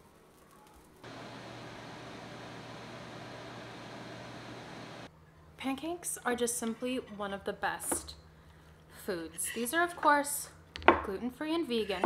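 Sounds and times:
fan whooshing with low hum: 1.0 - 5.1.

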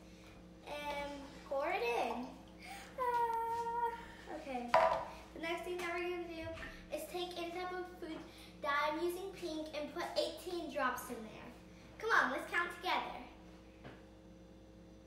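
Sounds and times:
jug knocking on stone counter: 4.7 - 5.1.

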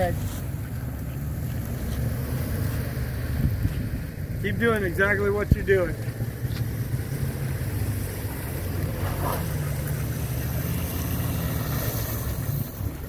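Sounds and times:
pickup truck engines under load: 0.0 - 13.0.

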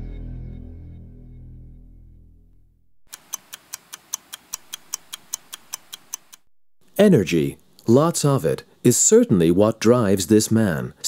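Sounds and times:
stopwatch ticking: 3.1 - 6.5.

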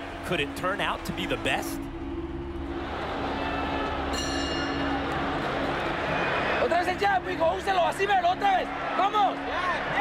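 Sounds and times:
boxing ring bell: 4.1 - 5.0.

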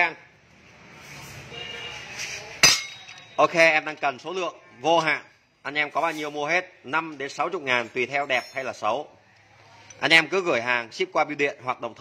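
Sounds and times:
metallic clink with ring: 2.6 - 3.4, 7.8 - 8.9.

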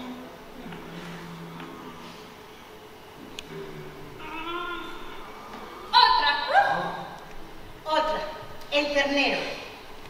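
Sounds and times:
person holding wavering vocal tone: 3.5 - 7.1.

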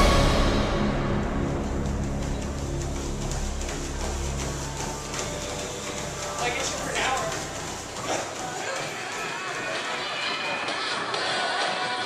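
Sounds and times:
background music: 0.0 - 12.0
footfalls on a treadmill: 1.6 - 12.0
people talking: 6.4 - 12.0.

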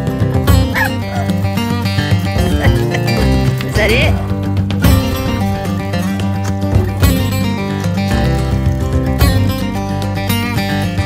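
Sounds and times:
background music: 0.0 - 11.0
dog yipping: 0.6 - 1.5, 2.4 - 3.5.

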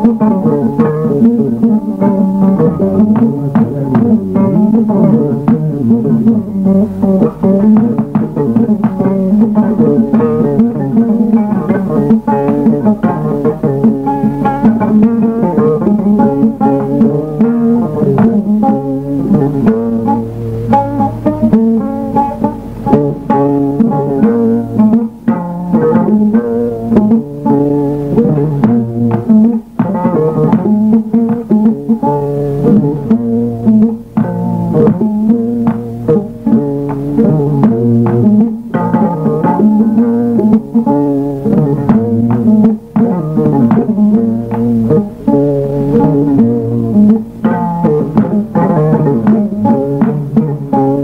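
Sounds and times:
quick plucked string notes: 0.0 - 51.0.

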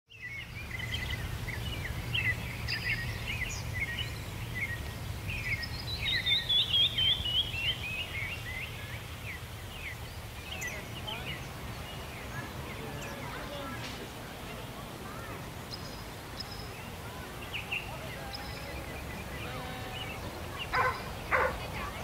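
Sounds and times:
songbirds chirping and singing: 0.1 - 22.0.

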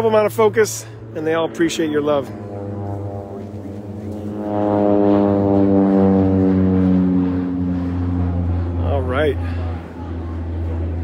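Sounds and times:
steady low hum: 0.0 - 11.0
long horn-like tone: 2.8 - 8.8.

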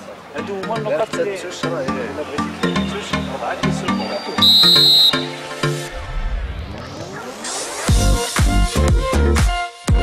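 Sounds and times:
electronic music with a beat: 0.4 - 10.0
referee's whistle blast: 4.1 - 5.4.

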